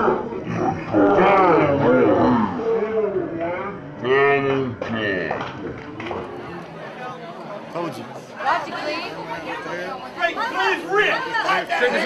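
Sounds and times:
men shouting and yelling: 7.8 - 12.0.

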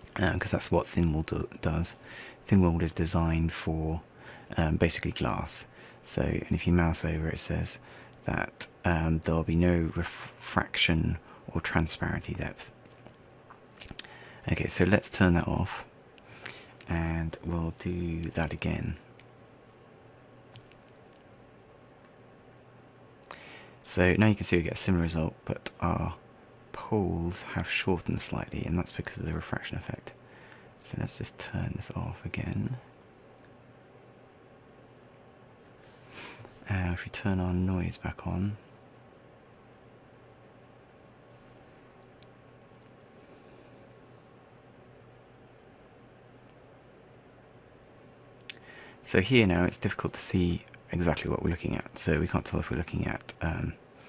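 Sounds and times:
faint low hum: 0.0 - 54.0
faint hiss: 41.2 - 44.8.

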